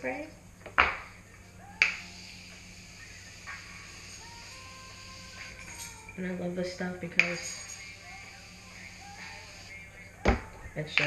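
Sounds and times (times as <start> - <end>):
hiss of spray: 1.9 - 5.8, 7.2 - 9.8.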